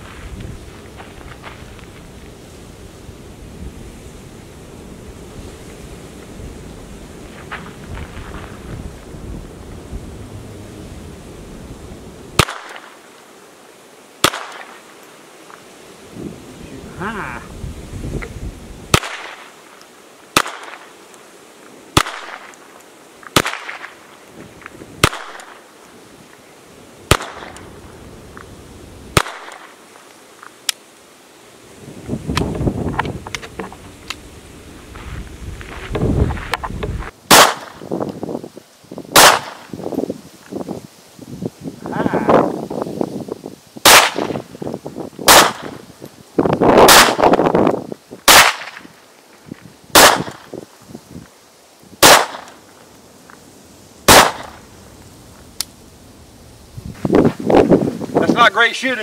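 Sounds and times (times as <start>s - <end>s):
wind on microphone: 0.0s - 12.4s, 16.0s - 19.0s, 31.7s - 52.2s, 56.0s - 58.7s
pistol shots: 12.4s - 12.9s, 14.2s - 14.8s, 18.9s - 19.4s, 20.4s - 20.8s, 22.0s - 22.5s, 23.4s - 23.8s, 25.0s - 25.5s, 27.1s - 27.6s, 29.2s - 29.7s, 37.3s - 37.8s, 39.1s - 39.6s, 43.8s - 44.4s, 45.3s - 45.8s, 46.8s - 47.3s, 48.3s - 48.8s, 49.9s - 50.4s, 52.0s - 52.5s, 54.1s - 54.6s.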